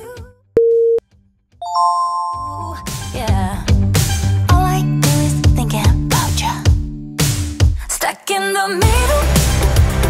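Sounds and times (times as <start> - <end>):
bright multi-note chime: 1.6 - 3.0
timer countdown beep: 1.6 - 3.0
background music: 1.6 - 8.0.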